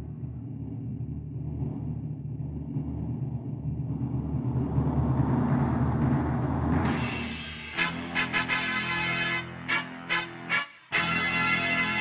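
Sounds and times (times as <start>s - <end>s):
low synthesized rumble: 0.0s - 12.0s.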